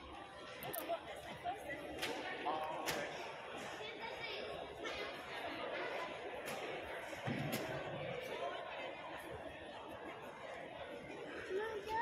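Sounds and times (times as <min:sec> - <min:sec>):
chatter of many people: 0:00.0 - 0:12.0.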